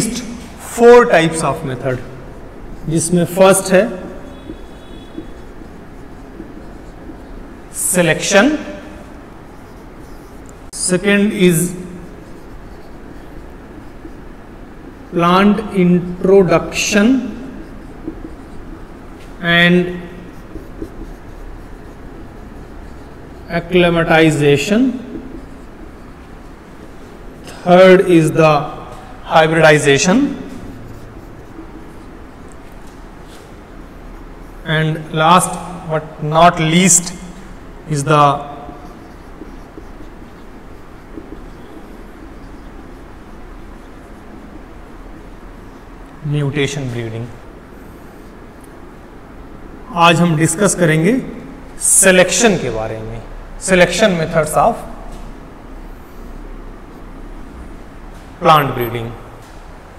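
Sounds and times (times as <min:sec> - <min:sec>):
man speaking: 0:00.0 - 0:04.4, 0:07.7 - 0:09.0, 0:10.8 - 0:12.0, 0:15.1 - 0:17.7, 0:19.3 - 0:20.4, 0:23.4 - 0:25.3, 0:27.4 - 0:30.9, 0:34.6 - 0:39.0, 0:46.2 - 0:47.4, 0:49.9 - 0:55.0, 0:58.4 - 0:59.4
marker writing on whiteboard: 0:00.0 - 0:59.9
room noise hiss: 0:00.0 - 0:59.9.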